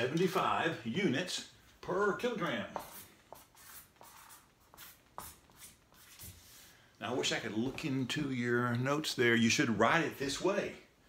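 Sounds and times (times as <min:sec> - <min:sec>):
marker squeaking on whiteboard: 0:02.7 - 0:06.6.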